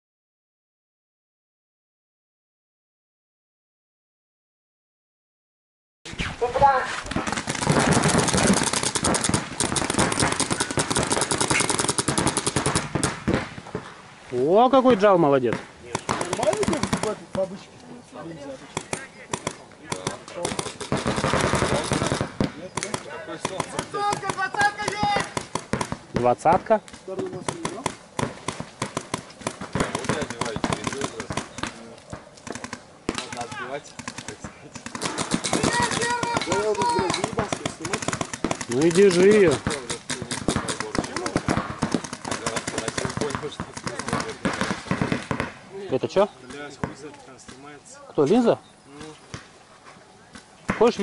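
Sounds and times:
paintball markers firing rapidly: 7.1s - 13.4s, 15.9s - 17.5s, 18.7s - 26.4s, 27.1s - 45.5s
people shouting: 35.5s - 37.4s.

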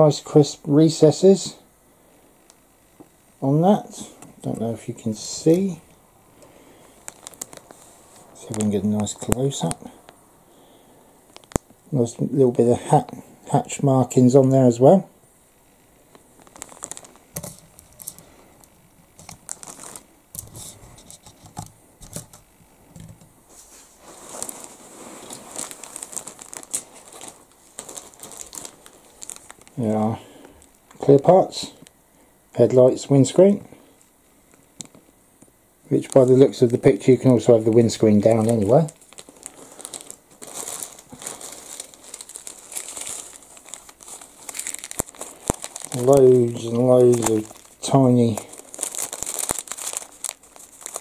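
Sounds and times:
plastic bag crackling: 3.7s - 10.2s, 11.2s - 14.6s, 15.8s - 31.9s, 35.8s - 51.0s.

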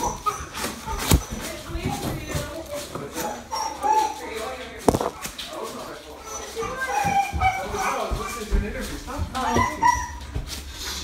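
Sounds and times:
dog whimpering and yipping: 0.0s - 1.4s, 3.2s - 4.4s, 6.2s - 8.5s, 9.4s - 10.4s.

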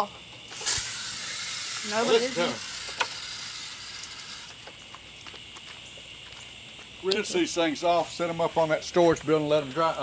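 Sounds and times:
garden hose water running: 0.0s - 10.0s.

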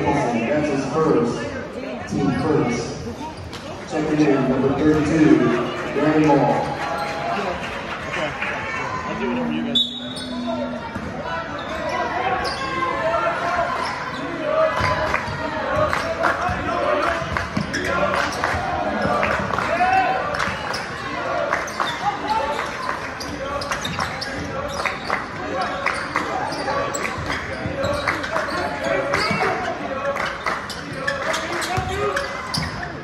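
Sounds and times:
chatter of spectators: 0.0s - 33.0s.

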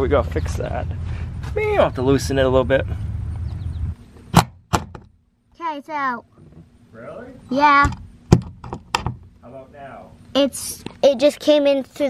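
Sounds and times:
low rumble: 0.0s - 4.0s
knocks on wooden wall: 4.4s - 5.1s, 7.8s - 9.3s.

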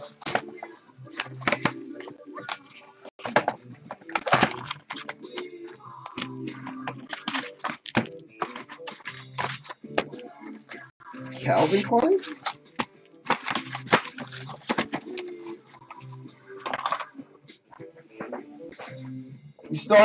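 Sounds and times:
background music: 0.0s - 20.0s
foil packs rustling and crinkling: 6.1s - 9.8s, 11.3s - 15.6s.

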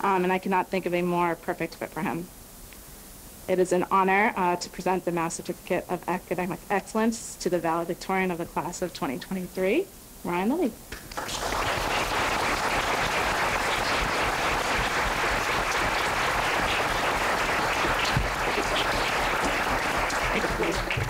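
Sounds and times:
voices: 3.5s - 10.8s, 20.3s - 21.0s
audience applauding: 11.1s - 21.0s.

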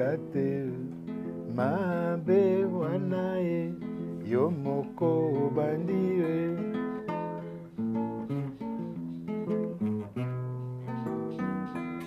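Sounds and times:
classical guitar plucked notes: 0.0s - 12.0s.

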